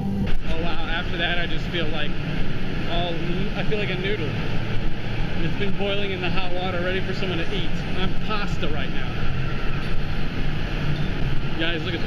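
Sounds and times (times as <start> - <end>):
indoor water park rushing noise: 0.0 - 12.0.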